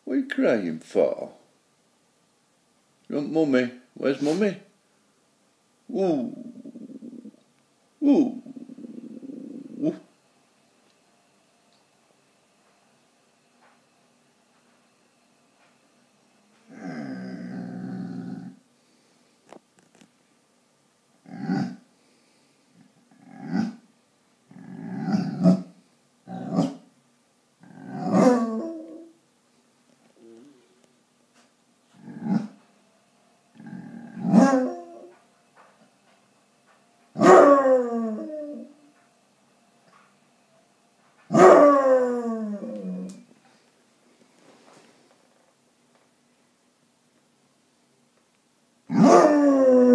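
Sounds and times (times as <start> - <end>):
dog howling: 27.8 - 29.1, 34.0 - 35.2, 37.2 - 38.8, 41.3 - 43.2, 48.9 - 49.9
dog yelping and barking: 28.1 - 28.9, 34.2 - 35.2, 37.2 - 38.6, 41.3 - 41.9, 48.9 - 49.5.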